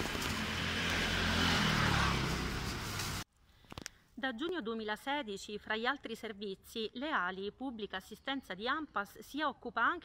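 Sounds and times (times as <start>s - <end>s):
vehicle engine running: 0.0s - 3.2s
street noise: 0.0s - 3.3s.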